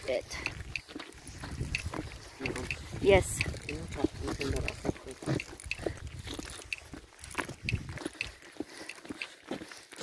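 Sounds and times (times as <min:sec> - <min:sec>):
footsteps on asphalt: 0:00.0 - 0:10.0.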